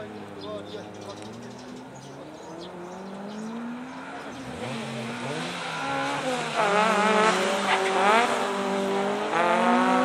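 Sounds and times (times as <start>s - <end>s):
car engine revving hard: 2.3s - 10.0s.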